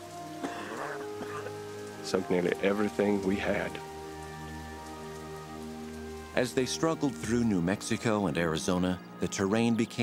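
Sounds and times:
music with long held notes: 0.0 - 10.0
steady rain: 0.0 - 10.0.

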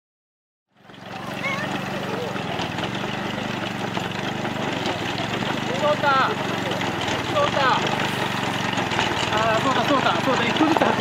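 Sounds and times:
small engine running: 0.7 - 11.0
people talking: 1.1 - 2.4, 5.6 - 8.2, 9.3 - 11.0.

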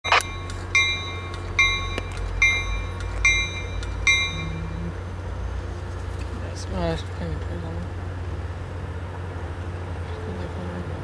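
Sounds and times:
locomotive bell ringing: 0.0 - 5.8
low engine hum: 0.1 - 11.0.

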